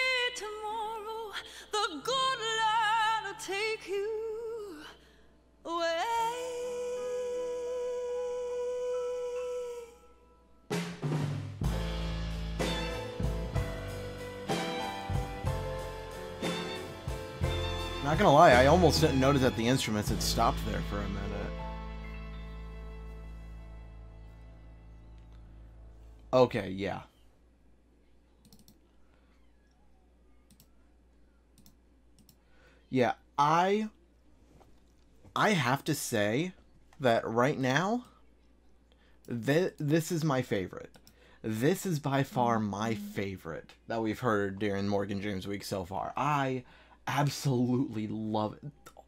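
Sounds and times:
band playing: 10.7s - 24.8s
faint computer mouse clicks: 28.4s - 29.8s, 30.5s - 30.8s, 31.6s - 32.4s.

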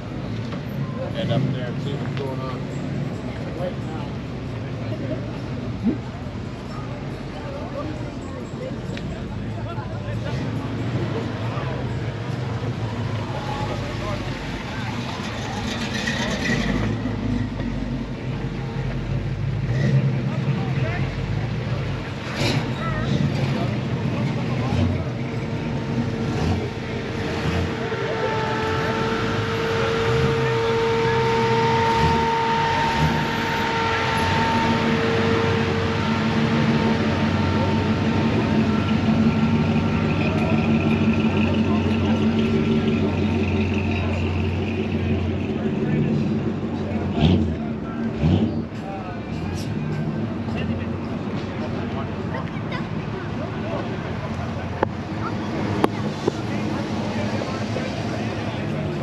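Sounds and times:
car engine idling: 0.0s - 59.0s.

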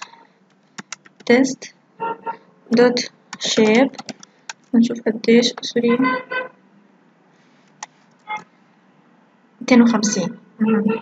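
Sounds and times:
keyboard click: 3.4s - 4.7s.

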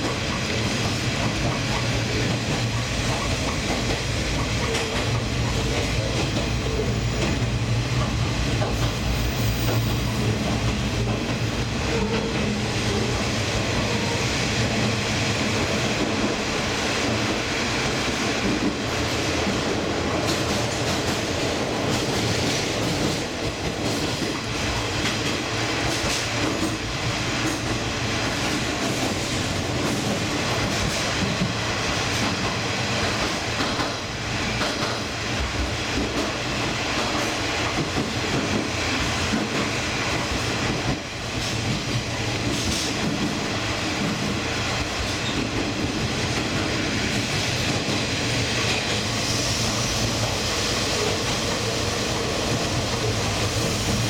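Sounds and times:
train wheels rumbling on rails: 0.0s - 54.0s.

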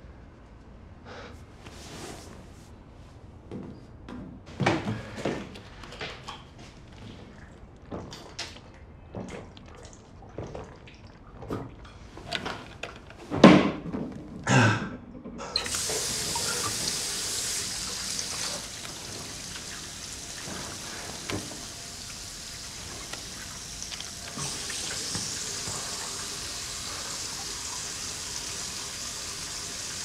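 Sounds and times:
tap running into a sink: 15.6s - 30.0s.

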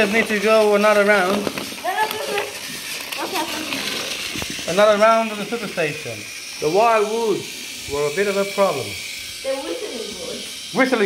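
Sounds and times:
toy train motor whirring: 0.0s - 11.0s.

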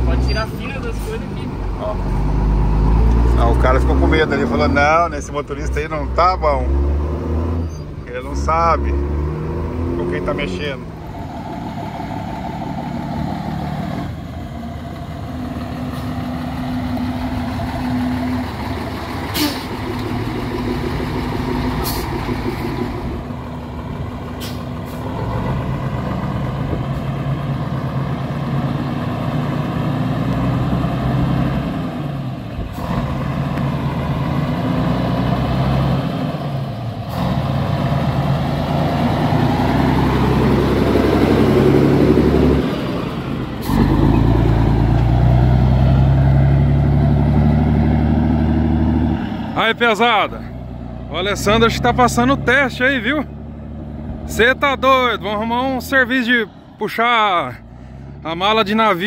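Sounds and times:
diesel truck engine changing gears: 0.0s - 59.0s.

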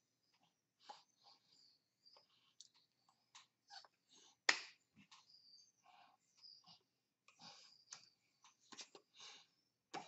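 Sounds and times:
hands slapping and tapping: 4.4s - 5.2s.

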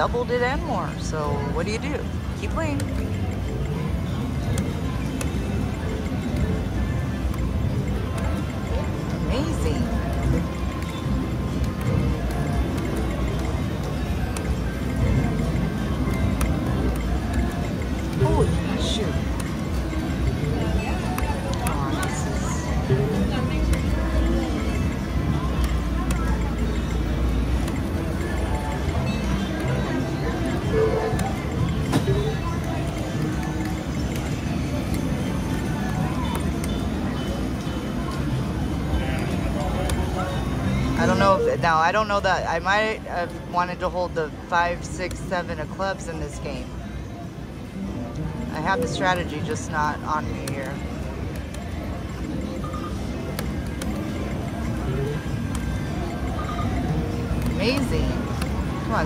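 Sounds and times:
electronic slot machine tones: 0.0s - 45.9s, 46.5s - 59.0s
background music: 0.0s - 59.0s
indistinct chatter: 0.0s - 59.0s.

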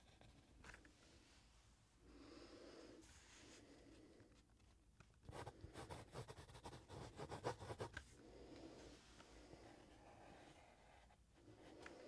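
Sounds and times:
pencil sketching on paper: 5.3s - 8.0s, 9.6s - 11.2s.

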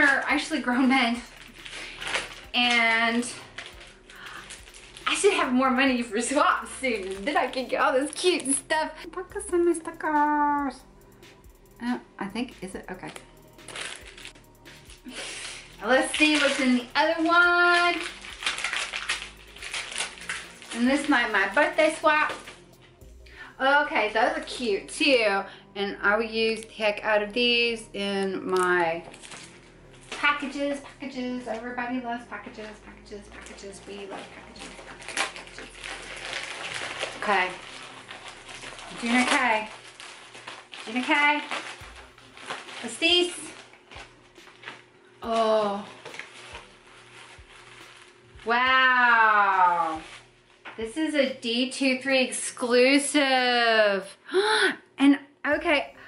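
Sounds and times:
wrapping paper crinkling: 0.0s - 10.8s, 11.6s - 23.5s, 28.5s - 50.8s.

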